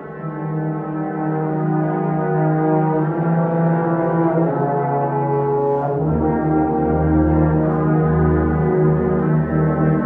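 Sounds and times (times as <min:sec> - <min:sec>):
brass choir playing chords: 0:00.0 - 0:10.0.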